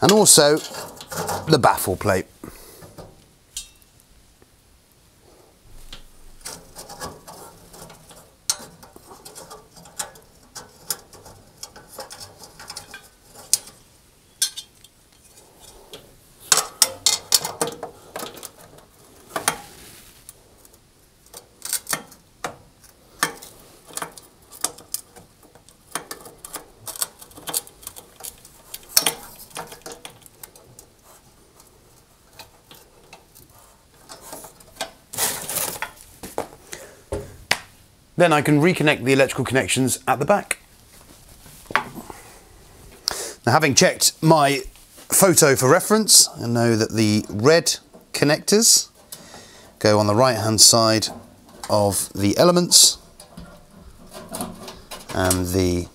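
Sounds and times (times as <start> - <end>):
sheet metal clinks and knocks: 0.0 - 1.6, 2.8 - 3.9, 5.8 - 15.0, 16.5 - 19.6, 23.2 - 30.9, 52.7 - 55.8.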